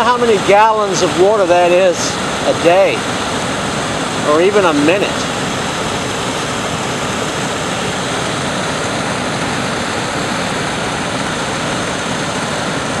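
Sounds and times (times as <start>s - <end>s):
water rushing over a dam: 0.0s - 13.0s.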